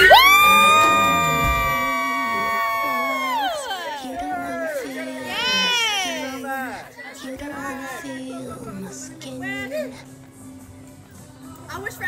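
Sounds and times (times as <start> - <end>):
voices singing a long high note: 0.0 - 6.9
faint crowd cheering: 0.0 - 8.3.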